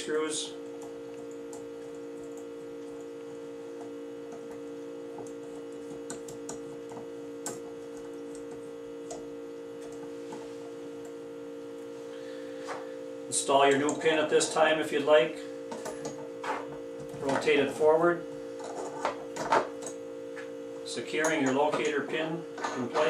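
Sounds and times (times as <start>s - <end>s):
steady two-tone hum: 0.0s - 23.0s.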